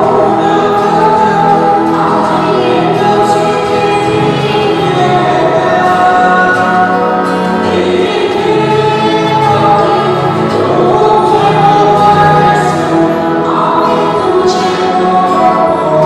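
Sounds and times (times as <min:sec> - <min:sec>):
choir singing a hymn: 0:00.0 - 0:16.0.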